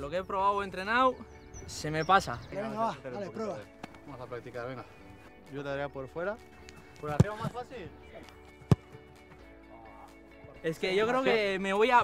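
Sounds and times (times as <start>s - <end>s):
background music: 0.0s - 12.0s
football being kicked: 6.9s - 7.6s, 8.6s - 9.0s.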